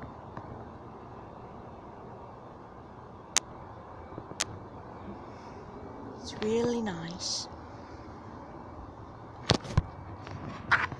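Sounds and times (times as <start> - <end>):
outdoor background hiss: 0.0 - 10.9.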